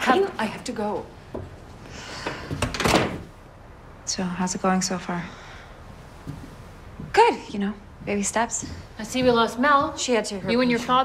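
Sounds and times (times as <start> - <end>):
door closing: 2.2 - 3.3.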